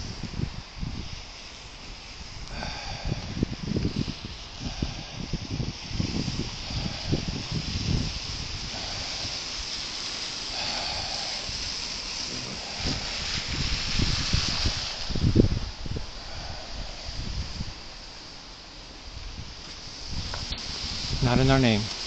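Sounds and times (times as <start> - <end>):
tyres hissing on wet road: 0.0 - 22.0
wind buffeting microphone: 0.0 - 22.0.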